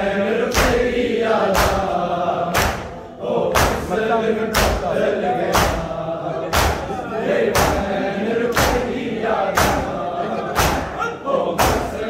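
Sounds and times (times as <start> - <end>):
chanting voices: 0.0 - 12.0
crowd slapping chests in unison: 0.0 - 12.0.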